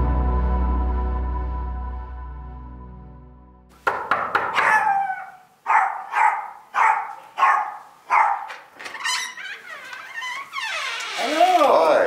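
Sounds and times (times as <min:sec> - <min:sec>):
knock at a door: 0:03.8 - 0:04.7
dog barking: 0:04.5 - 0:08.6.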